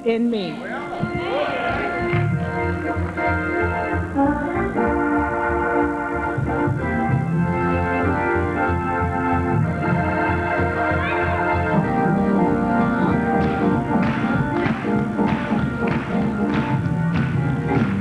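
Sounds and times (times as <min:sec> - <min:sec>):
organ playing held chords: 0:00.0 - 0:18.0.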